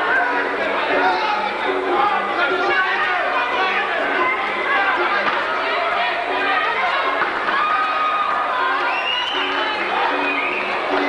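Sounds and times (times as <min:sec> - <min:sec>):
crowd chatter in a hall: 0:00.0 - 0:11.0
music playing: 0:00.0 - 0:11.0.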